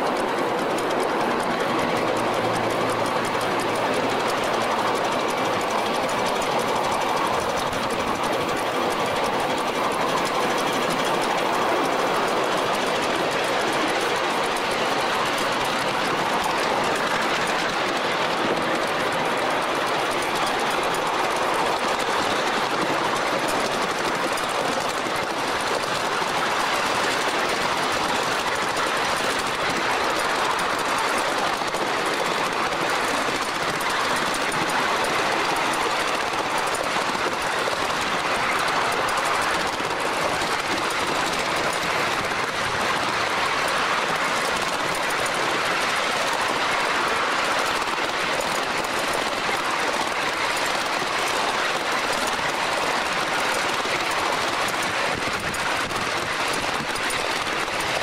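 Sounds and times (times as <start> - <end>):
train wheels clattering on rails: 0.0 - 58.0.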